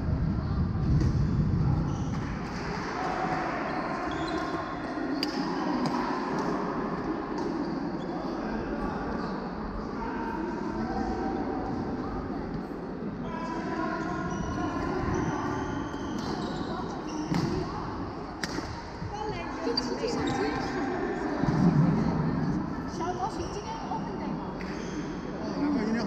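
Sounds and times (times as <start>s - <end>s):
voices echoing in hall: 1.5s - 26.0s.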